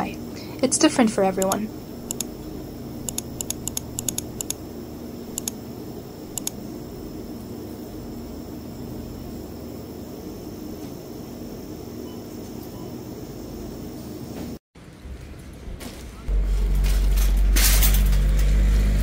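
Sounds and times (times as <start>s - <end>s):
shopping cart rolling over paving: 14.8s - 19.0s
freezer cabinets humming: 16.1s - 19.0s.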